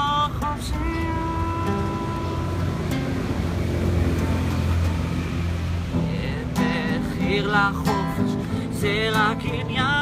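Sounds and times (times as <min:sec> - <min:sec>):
person singing: 0:00.0 - 0:03.6, 0:06.0 - 0:10.0
acoustic guitar playing softly: 0:00.0 - 0:10.0.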